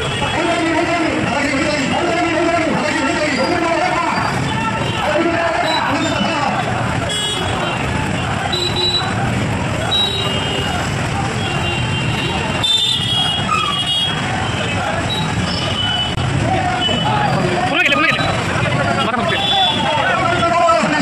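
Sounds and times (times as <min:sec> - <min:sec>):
crowd voices: 0:00.0 - 0:21.0
street traffic: 0:00.0 - 0:21.0.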